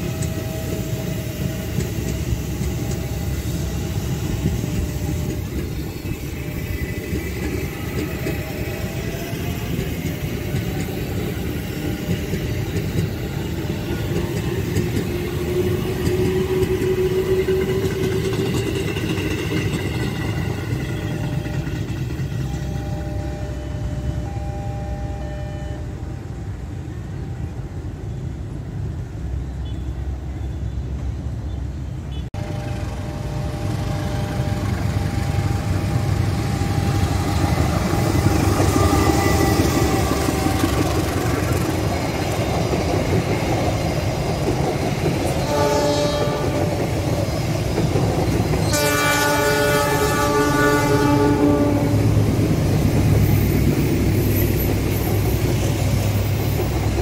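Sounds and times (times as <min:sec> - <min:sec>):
train wheels rumbling: 0:00.0 - 0:29.5, 0:32.4 - 0:57.0
two-note train horn: 0:20.9 - 0:26.3, 0:32.4 - 0:41.3, 0:45.4 - 0:46.9, 0:48.6 - 0:52.3.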